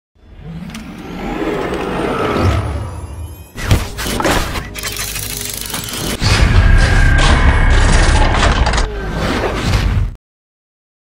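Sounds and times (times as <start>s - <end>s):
music: 1.7s - 9.2s
sharp impact and shattering hits: 3.6s - 8.9s.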